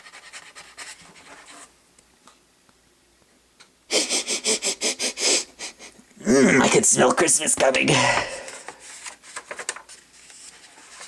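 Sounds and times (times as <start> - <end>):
person sniffing: 3.9 - 6.6.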